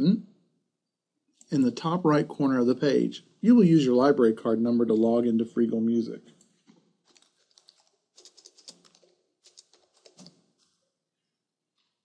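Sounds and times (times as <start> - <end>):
typing on computer keyboard: 7.1 - 10.4.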